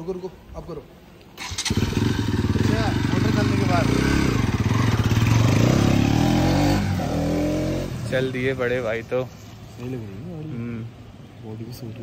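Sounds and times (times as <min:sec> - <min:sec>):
motorcycle accelerating: 0:01.4 - 0:09.0.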